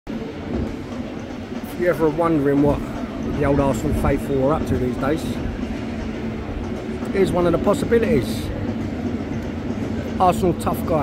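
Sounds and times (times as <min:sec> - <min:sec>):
man speaking: 0:01.7 - 0:05.4, 0:07.1 - 0:08.6, 0:10.2 - 0:11.0.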